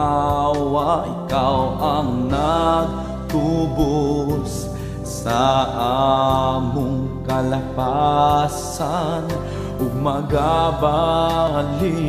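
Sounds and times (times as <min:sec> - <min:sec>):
instrumental backing: 0:00.0 - 0:12.0
person singing worship song: 0:00.0 - 0:12.0.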